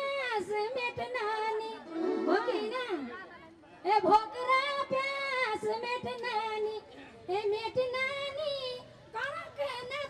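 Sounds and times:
woman singing into a microphone: 0:00.0 - 0:03.2, 0:03.8 - 0:10.0.

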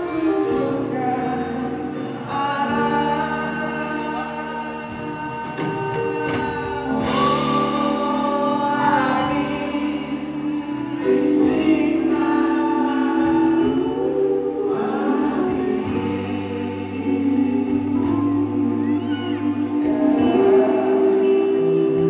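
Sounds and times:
electric guitars: 0:00.0 - 0:22.0
harmony voices: 0:00.0 - 0:22.0
lead vocal singing: 0:00.0 - 0:22.0.

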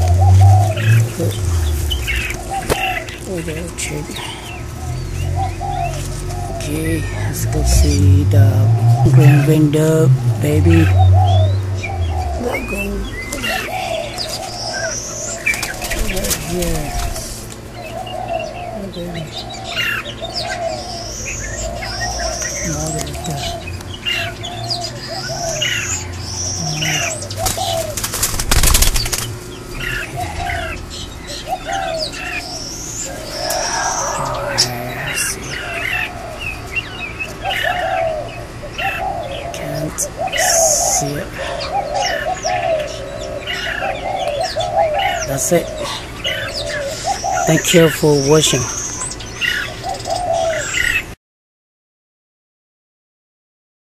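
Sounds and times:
low repeated bird notes: 0:00.0 - 0:51.2
high rising bird whistle: 0:31.6 - 0:35.9.

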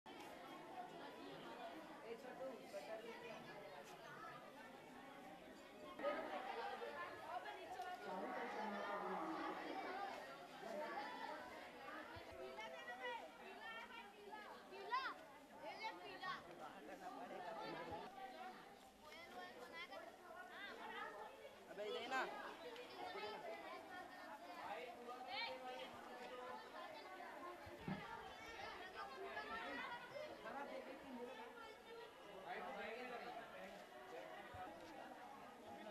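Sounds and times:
children talking: 0:00.1 - 0:35.9
schoolchildren chattering: 0:00.1 - 0:35.9.

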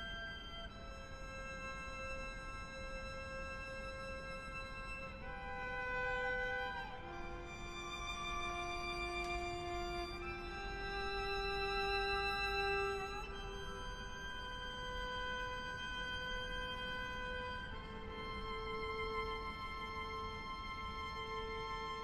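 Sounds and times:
violin bowed sustained notes: 0:00.0 - 0:22.0.

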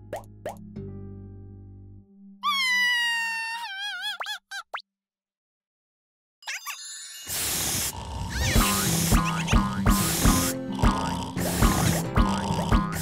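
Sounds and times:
cartoon rising chirps: 0:02.4 - 0:04.8.

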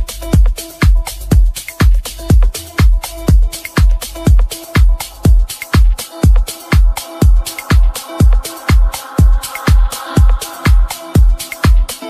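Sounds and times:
disco house music: 0:00.0 - 0:12.0.

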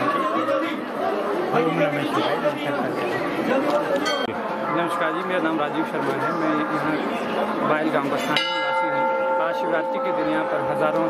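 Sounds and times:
background voices chattering: 0:00.0 - 0:11.0.

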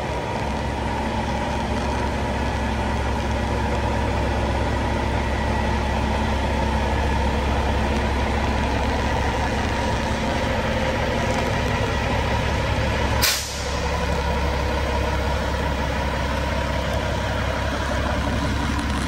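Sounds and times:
diesel truck engine idling: 0:00.0 - 0:19.0
air brake hiss: 0:13.2 - 0:13.8.

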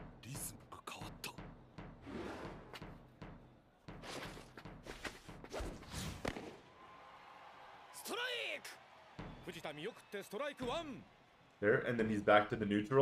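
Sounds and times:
drums thumping: 0:00.0 - 0:05.6, 0:09.1 - 0:09.7, 0:10.6 - 0:11.0.

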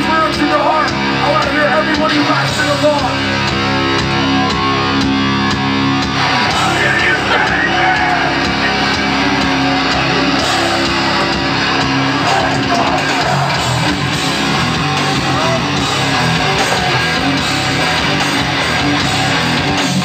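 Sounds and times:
distorted guitars chugging: 0:00.0 - 0:20.0
fast drums and crashing cymbals: 0:00.0 - 0:20.0
shouted vocals: 0:06.2 - 0:14.1, 0:14.9 - 0:17.5.

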